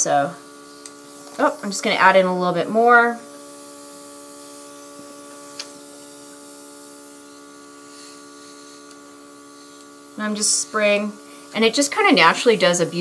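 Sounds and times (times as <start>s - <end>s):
airbrush compressor humming: 0.0s - 13.0s.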